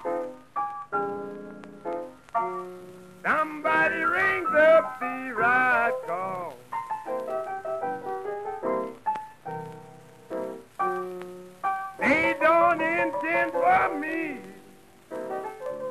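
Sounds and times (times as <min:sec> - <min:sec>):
blues piano chords: 0:00.0 - 0:15.9
man singing: 0:03.2 - 0:06.6, 0:12.0 - 0:14.6.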